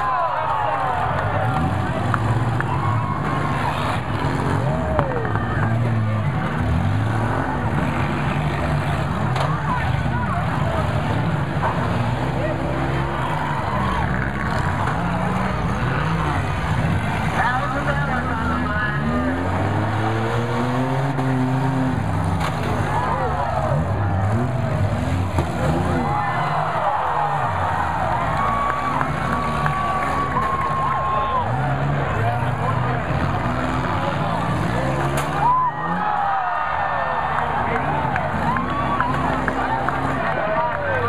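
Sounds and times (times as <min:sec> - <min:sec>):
car engines revving: 0:00.0 - 0:41.0
crowd voices: 0:00.0 - 0:41.0.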